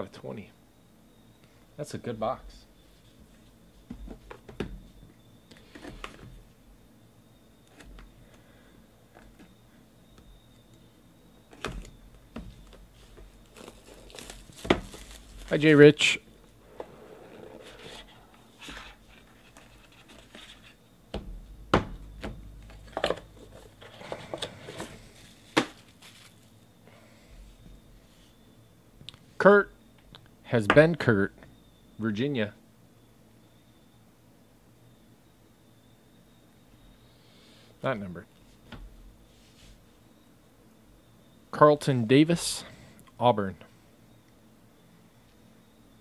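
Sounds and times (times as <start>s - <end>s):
sharp knock on cardboard box: 21.1s - 22.4s.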